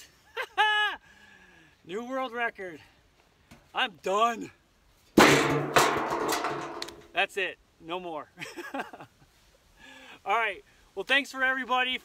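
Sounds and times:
metal lid clanging on ground: 0:05.2 - 0:07.1.

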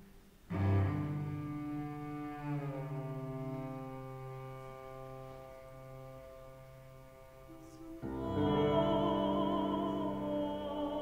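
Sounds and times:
cello bowed low note: 0:00.5 - 0:11.0
piano accompaniment: 0:00.5 - 0:11.0.

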